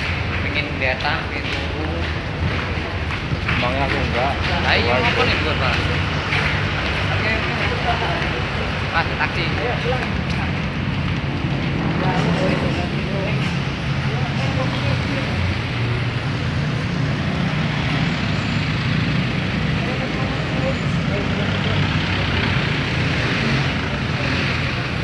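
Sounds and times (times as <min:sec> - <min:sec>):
cars passing: 0:00.0 - 0:25.0.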